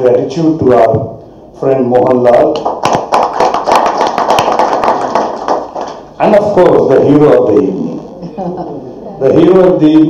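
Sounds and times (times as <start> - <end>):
audience applauding: 2.6 - 6.1.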